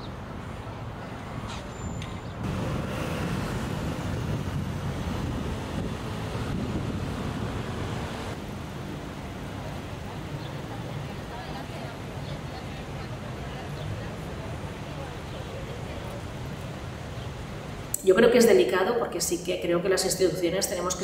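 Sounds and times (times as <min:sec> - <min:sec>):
traffic hum: 0:00.0 - 0:21.0.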